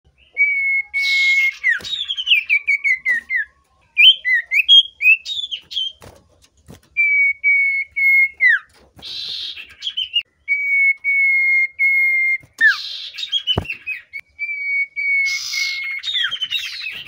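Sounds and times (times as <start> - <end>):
bird singing whistles and chirps: 0.1 - 6.1, 7.0 - 17.0.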